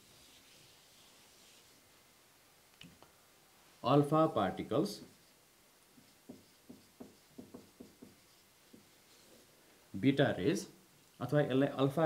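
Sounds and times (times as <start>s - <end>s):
marker pen on whiteboard: 4.3s - 9.5s.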